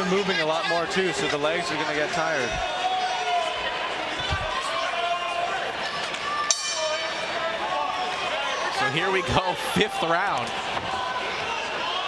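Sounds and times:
background chatter of voices: 0:00.0 - 0:12.0
boxing ring bell: 0:06.5 - 0:07.4.

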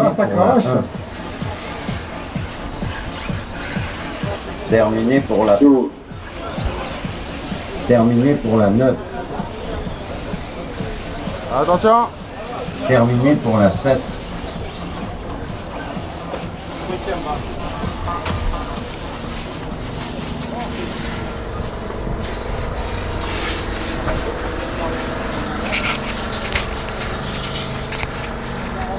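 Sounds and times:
model car engines droning: 0:00.4 - 0:28.9
background voices: 0:00.6 - 0:28.9.

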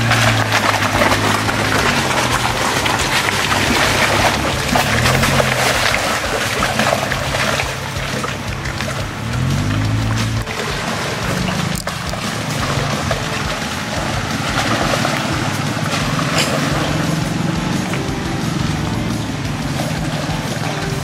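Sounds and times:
background music: 0:00.0 - 0:21.0
car engine running at low speed: 0:00.0 - 0:21.0
tyres in mud: 0:00.0 - 0:21.0.

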